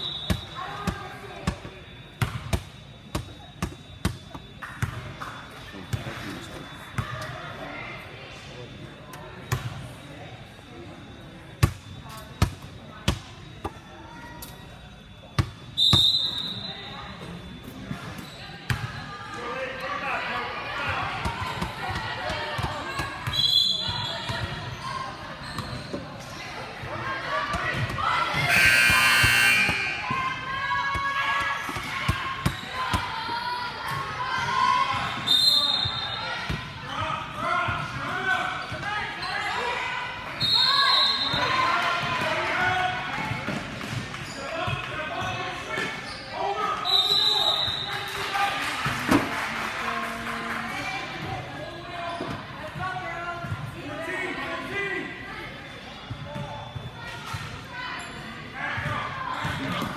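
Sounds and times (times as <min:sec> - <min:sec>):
voices echoing in gym: 0:00.0 - 0:59.9.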